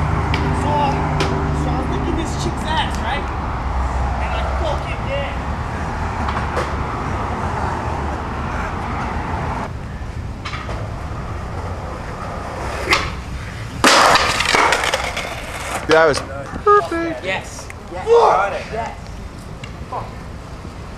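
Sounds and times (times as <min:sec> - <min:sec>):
skateboard pop: 0:13.8 - 0:15.2
skateboard crash on concrete: 0:13.8 - 0:15.8
faint voices: 0:16.5 - 0:17.7.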